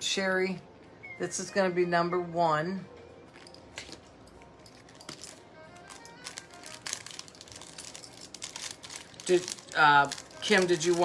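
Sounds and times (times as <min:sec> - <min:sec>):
faint background music: 0:00.0 - 0:11.0
packaging rustling: 0:04.6 - 0:11.0.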